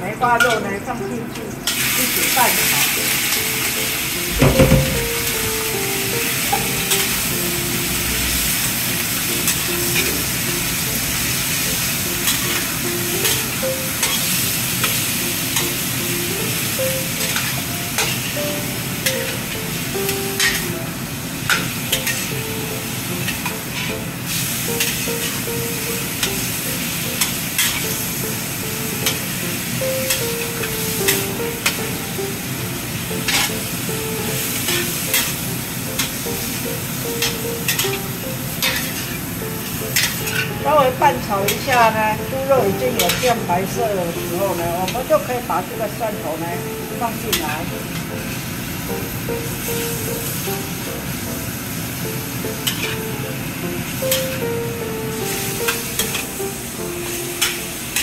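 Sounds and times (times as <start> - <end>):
meat sizzling in a wok: 1.6 - 58.0
metal spatula scraping wok: 12.2 - 15.0, 20.4 - 20.7, 21.5 - 22.3, 37.2 - 39.2, 42.9 - 43.5.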